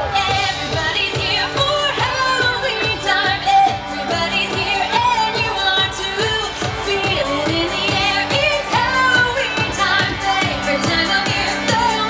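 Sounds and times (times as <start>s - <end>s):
singing over a steady beat: 0.0s - 12.0s.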